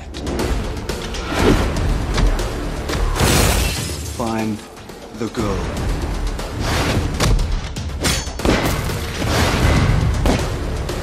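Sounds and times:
trailer music with deep bass: 0:00.0 - 0:11.0
glass shattering: 0:03.2 - 0:04.2.

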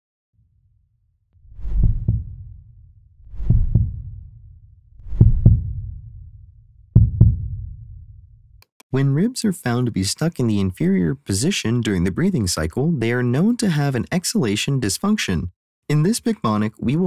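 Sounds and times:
heartbeat thumps: 0:01.5 - 0:02.7, 0:03.3 - 0:04.4, 0:05.0 - 0:08.3.

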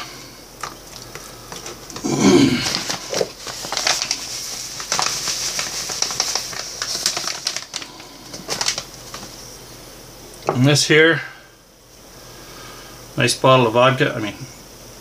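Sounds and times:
paper packet rustling and crinkling: 0:00.6 - 0:09.6.

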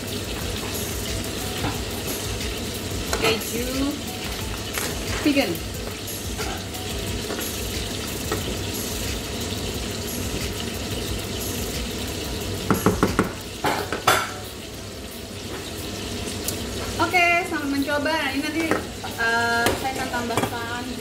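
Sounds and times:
pasta sizzling in a pan: 0:00.0 - 0:21.0
spatula knocking against pan: 0:12.7 - 0:14.4.

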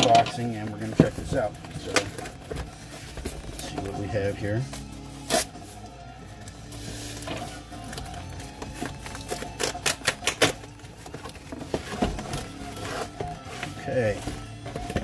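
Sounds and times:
death metal music: 0:00.0 - 0:15.0.

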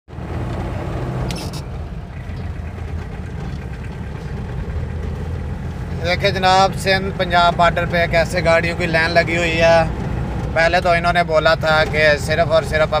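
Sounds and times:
car engine and tyres rumbling: 0:00.1 - 0:13.0.

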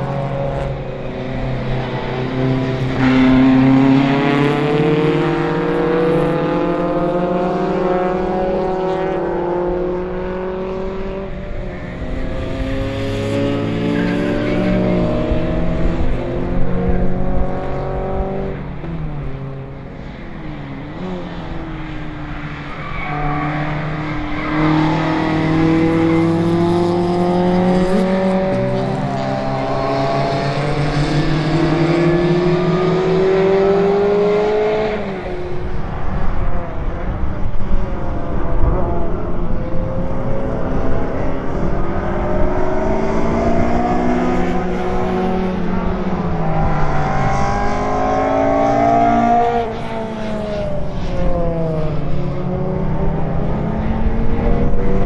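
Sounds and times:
race car engines accelerating: 0:00.0 - 0:55.0.

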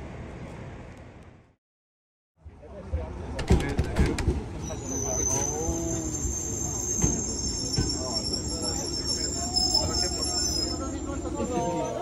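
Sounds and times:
high-pitched brake squeal: 0:04.6 - 0:12.0.

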